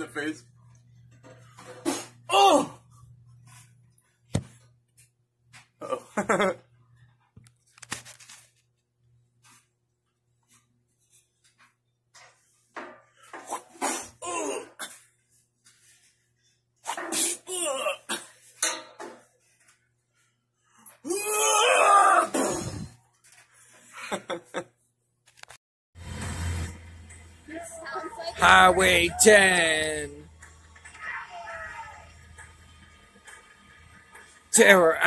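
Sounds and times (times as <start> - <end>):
non-word vocal sounds: 28.2 - 30.2.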